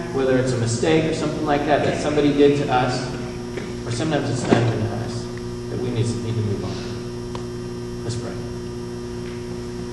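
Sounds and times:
electrical mains hum: 0:00.0 - 0:09.9.

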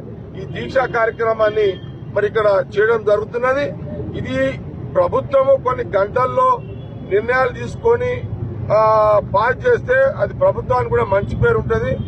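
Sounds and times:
man speaking into microphones: 0:00.2 - 0:12.0.

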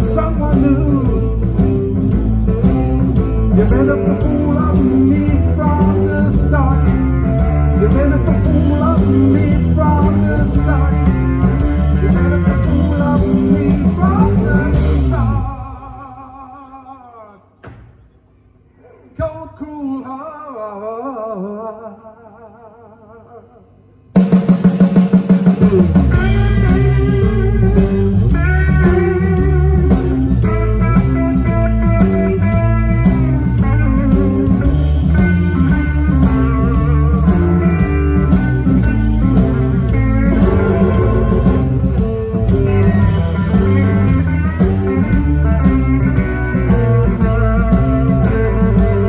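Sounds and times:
blues band playing: 0:00.0 - 0:15.7, 0:24.2 - 0:49.0
electric guitars: 0:00.0 - 0:15.7, 0:25.6 - 0:49.0
drums: 0:00.0 - 0:21.8, 0:23.4 - 0:49.0
drum roll: 0:24.2 - 0:30.4, 0:39.8 - 0:44.8
steady low note: 0:40.2 - 0:43.3.

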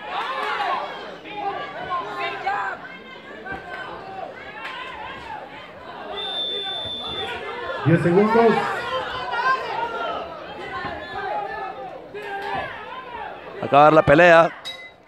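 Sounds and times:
spectators shouting and talking: 0:00.0 - 0:15.0.

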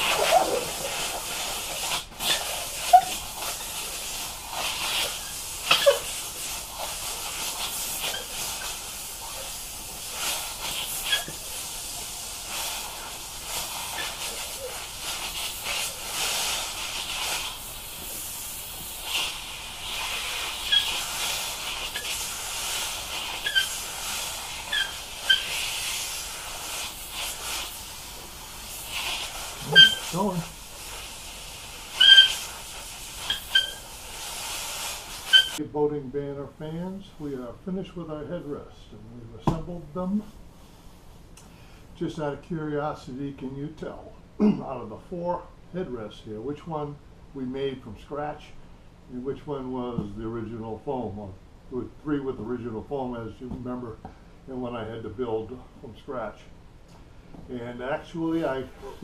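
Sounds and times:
steam pops and spits: 0:00.0 - 0:35.6
steamer wand hissing: 0:00.0 - 0:35.6.

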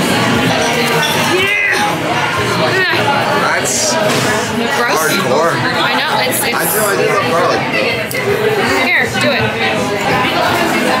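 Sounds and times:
chatter of voices: 0:00.0 - 0:11.0.

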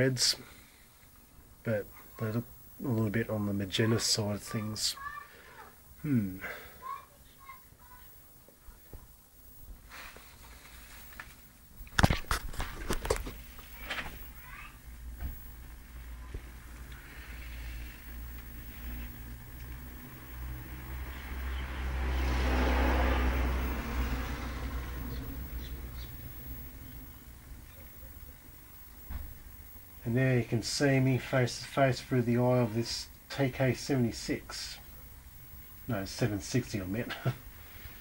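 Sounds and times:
vehicle passing by: 0:18.8 - 0:27.1.

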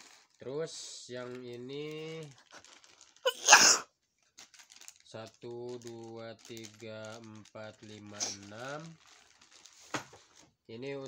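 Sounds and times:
plastic packets rustling: 0:00.0 - 0:10.6
person sneezing: 0:03.3 - 0:03.8.

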